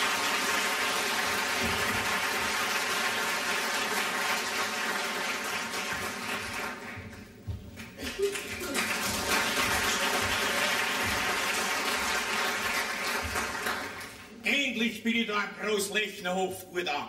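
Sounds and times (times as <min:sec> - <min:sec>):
audience applauding: 0:00.0 - 0:14.4.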